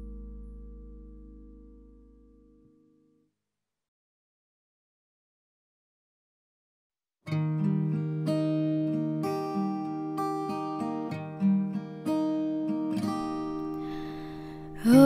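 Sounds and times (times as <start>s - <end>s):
acoustic guitar ballad: 0.0s - 3.0s, 7.3s - 15.0s
soft breath in: 13.7s - 14.9s.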